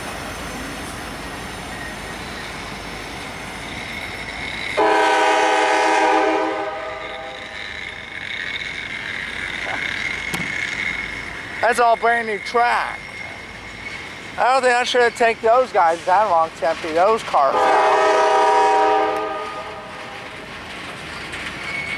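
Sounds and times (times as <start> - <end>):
freight train rumbling past: 0.0 - 21.9
train horn chord: 4.8 - 7.4, 17.5 - 19.8.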